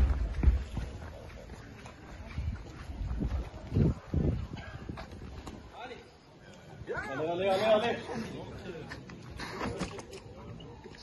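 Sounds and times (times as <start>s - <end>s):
knocks and scuffs: 0.0s - 5.7s.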